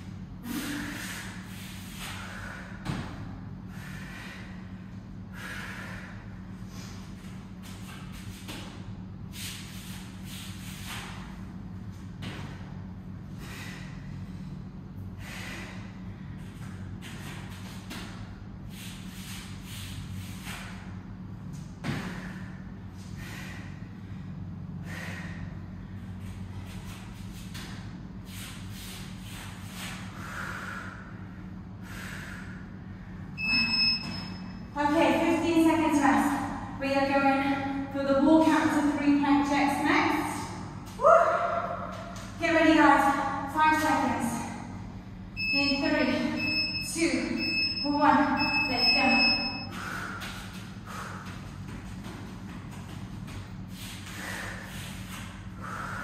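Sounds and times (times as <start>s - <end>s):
low hum: 0.0s - 56.0s
woman breathing hard: 0.3s - 7.4s, 12.4s - 17.0s, 21.8s - 26.7s, 29.8s - 33.5s, 49.6s - 51.8s, 53.6s - 56.0s
interval timer beeps: 33.4s - 34.6s, 45.4s - 49.8s.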